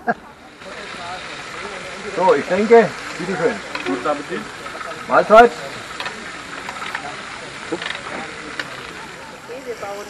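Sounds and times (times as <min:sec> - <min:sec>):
faint voices: 0:00.0 - 0:10.0
food frying hiss: 0:00.0 - 0:10.0
utensils clicking against pans: 0:00.6 - 0:09.9.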